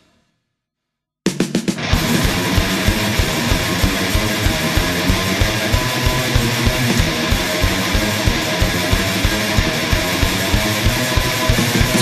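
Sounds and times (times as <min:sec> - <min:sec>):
fast driving drum beat: 0:01.3 - 0:12.0
distorted electric guitars: 0:01.7 - 0:12.0.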